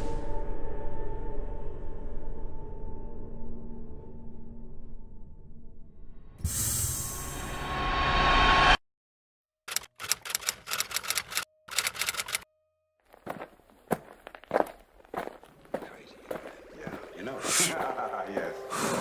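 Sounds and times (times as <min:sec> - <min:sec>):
stuttering chopped clicking: 0:09.7 - 0:12.4.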